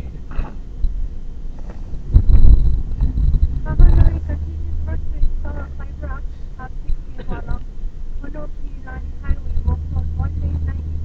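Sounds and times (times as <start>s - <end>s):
car rumble inside cabin: 0.0s - 11.0s
indistinct voices: 2.9s - 11.0s.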